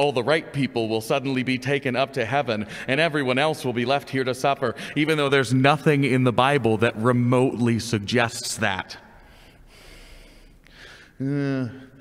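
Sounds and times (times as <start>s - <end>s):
man breathing: 2.6s - 2.9s, 4.7s - 5.0s, 9.0s - 11.3s.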